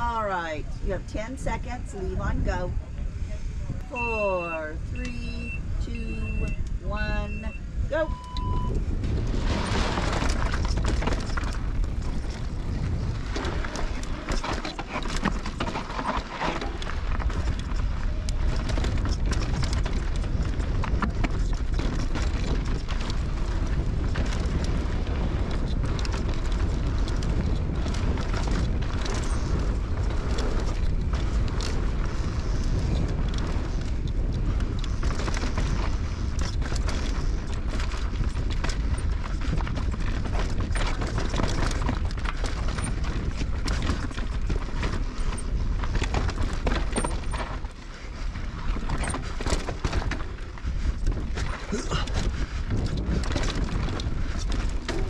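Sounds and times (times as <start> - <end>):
wind rumbling on microphone: 0.0 - 55.0
tyres crunching over dirt: 8.6 - 55.0
bike knocking and rattling: 8.7 - 55.0.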